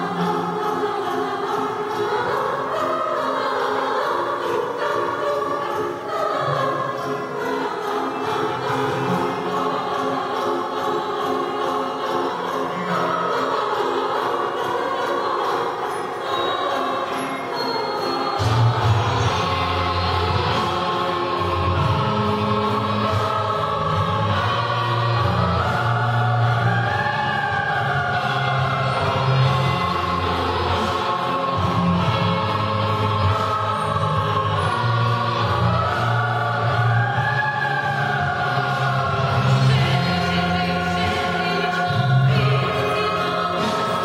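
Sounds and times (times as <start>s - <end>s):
children's choir singing: 0.0s - 44.0s.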